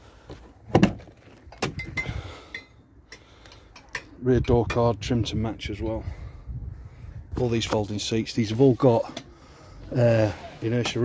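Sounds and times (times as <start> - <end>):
metallic clunks and clinks: 1.5 - 2.8.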